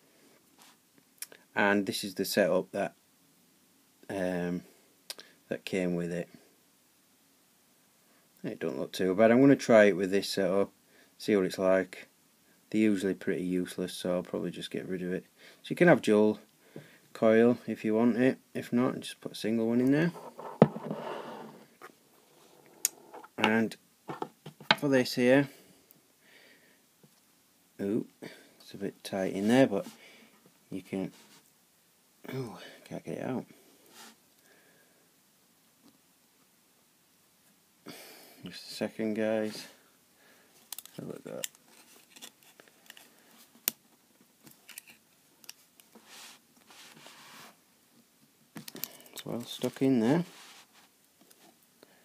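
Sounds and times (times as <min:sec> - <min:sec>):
soft rustle: 0:00.2 - 0:00.9, 0:19.8 - 0:23.4, 0:28.6 - 0:31.6, 0:33.6 - 0:34.4, 0:40.4 - 0:47.7, 0:48.6 - 0:51.7
soft scraping: 0:20.0 - 0:23.4, 0:46.0 - 0:47.6, 0:49.4 - 0:51.5.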